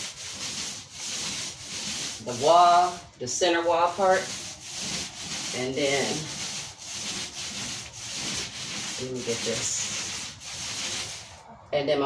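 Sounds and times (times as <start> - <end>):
paint roller swishing on wall: 0.0 - 11.6.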